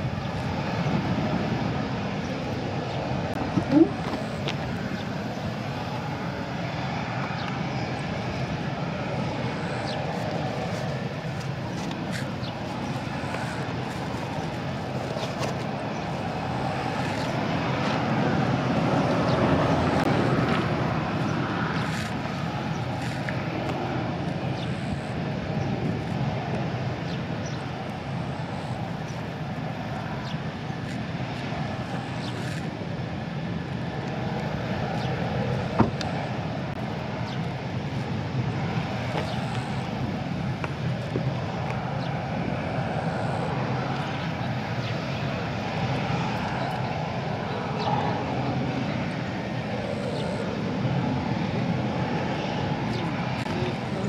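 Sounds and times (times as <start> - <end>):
jet engines running: 0.0 - 54.0.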